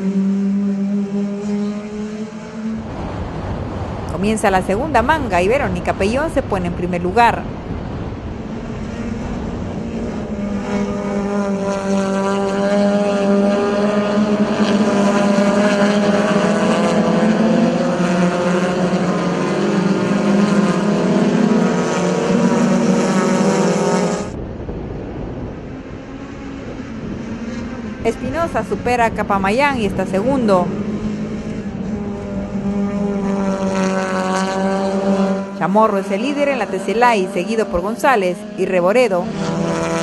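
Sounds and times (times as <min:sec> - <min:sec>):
race cars at high revs: 0:00.0 - 0:40.0.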